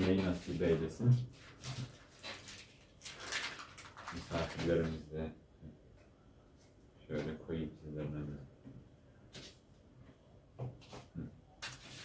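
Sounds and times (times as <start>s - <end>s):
crinkling rustle of fruit leather: 0.0s - 5.1s.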